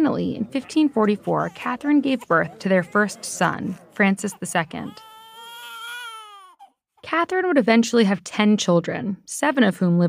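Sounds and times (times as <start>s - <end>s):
newborn baby crying: 0.2s - 6.8s.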